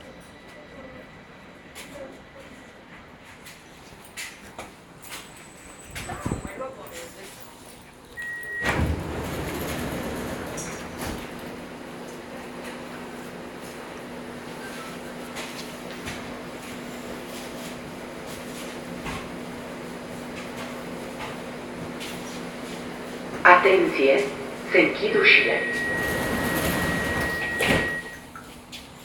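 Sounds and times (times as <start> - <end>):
train running noise: 0.0 - 29.0
warning beep: 8.2 - 8.8, 24.2 - 28.2
sliding doors shutting: 8.2 - 12.8, 24.0 - 28.3.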